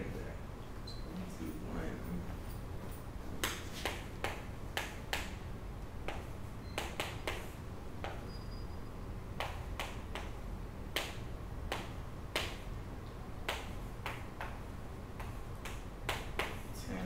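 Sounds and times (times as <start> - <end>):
low room hum: 0.0 - 17.0
chalk tapping on chalkboard: 3.4 - 5.4, 6.0 - 8.2, 15.2 - 16.6.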